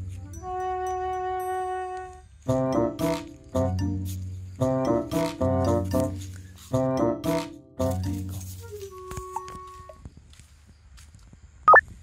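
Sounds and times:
faint footsteps: 5.9 - 6.8, 8.0 - 12.0.

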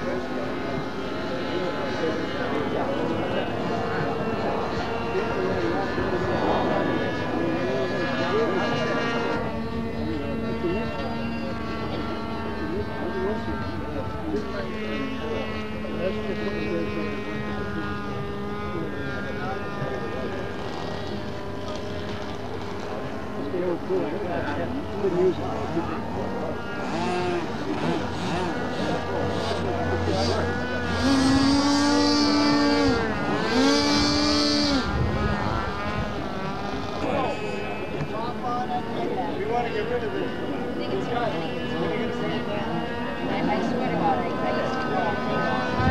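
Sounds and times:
people talking: 0.0 - 45.9
propeller engine droning: 0.0 - 45.9.

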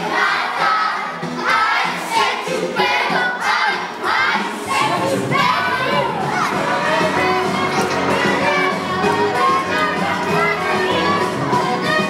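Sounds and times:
young children shouting and chanting: 0.0 - 12.0.

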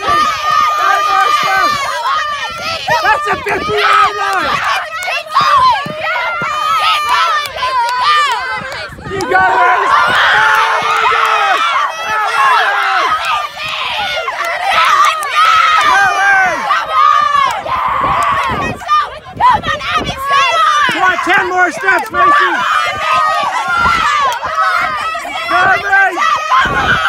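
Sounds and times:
girls shouting and cheering: 0.0 - 27.0.

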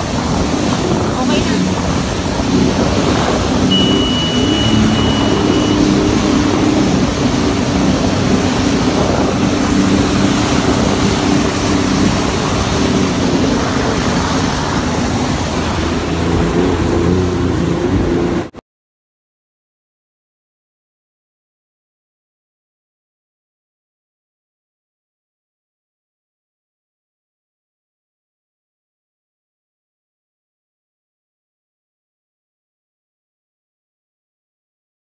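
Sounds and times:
rushing water: 0.0 - 18.5
wind noise on microphone: 0.0 - 18.5
jet ski engine running: 0.0 - 18.6.

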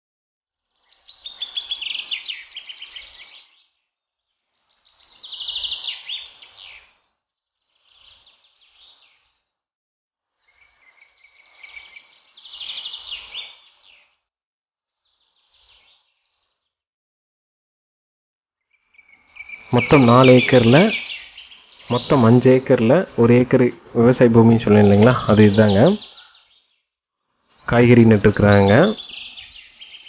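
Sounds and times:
birds chirping trills: 0.8 - 9.5, 10.3 - 14.2, 15.0 - 16.7, 18.8 - 26.9, 27.6 - 30.0.

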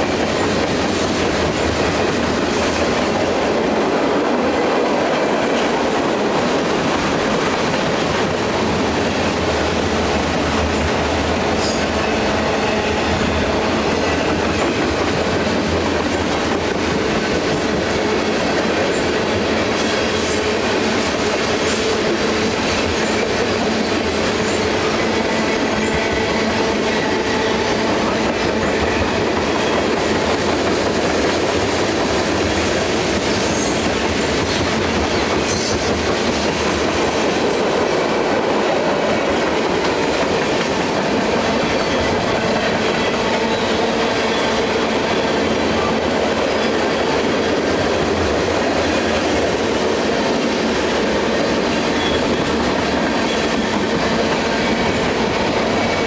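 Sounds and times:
train wheels rumbling on rails: 0.0 - 56.0.

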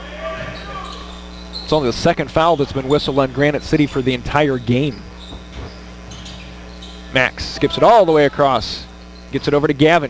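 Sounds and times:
steady low hum: 0.0 - 10.0
sneaker squeaks on court: 0.4 - 7.7.

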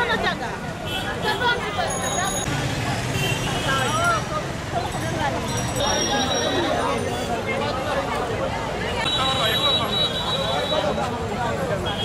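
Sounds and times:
people talking: 0.0 - 12.0
traffic noise: 0.0 - 12.0.

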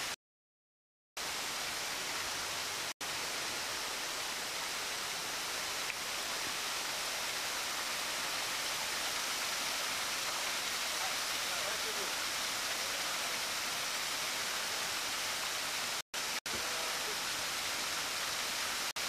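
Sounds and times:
water rushing over weir: 1.4 - 19.0.

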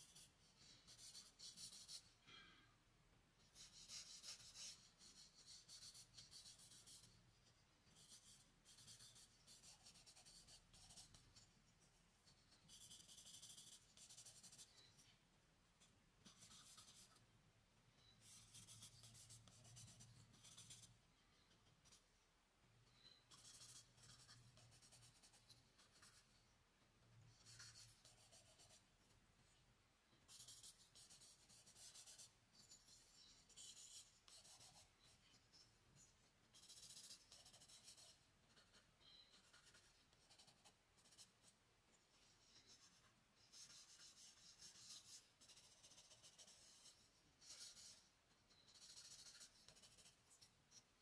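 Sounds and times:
charcoal scratching on paper: 0.0 - 2.1, 3.5 - 7.2, 7.9 - 11.5, 12.7 - 14.7, 42.4 - 50.9.

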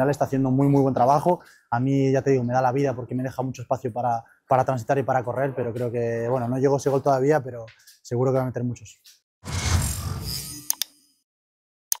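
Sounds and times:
whoosh: 9.4 - 10.7
mouse clicks: 10.7 - 10.9.

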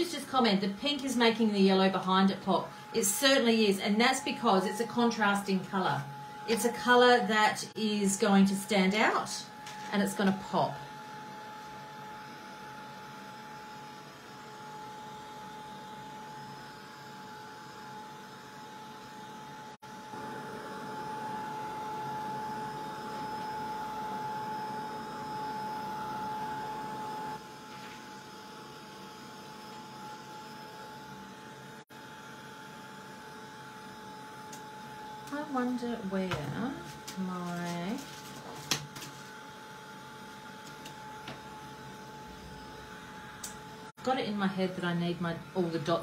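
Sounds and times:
heat gun blower whine: 0.0 - 46.0.

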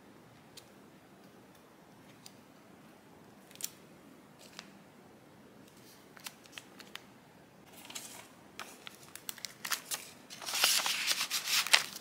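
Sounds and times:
paper clicks and rustles: 7.7 - 12.0.

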